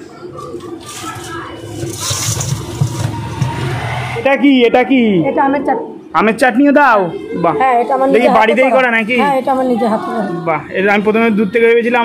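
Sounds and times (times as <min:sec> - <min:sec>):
vehicle engine rumbling: 0:00.0 - 0:05.1.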